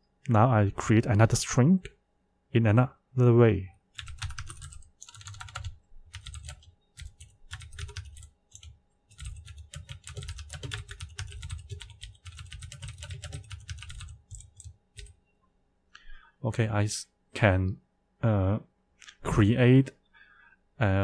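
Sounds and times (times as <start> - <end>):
computer keyboard typing: 4.0 - 15.2.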